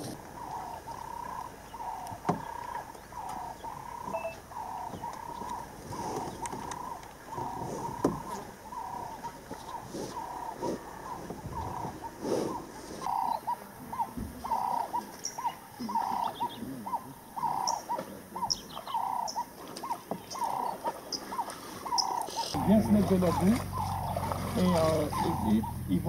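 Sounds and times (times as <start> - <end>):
higher bird chirps: 0.2 - 26.0.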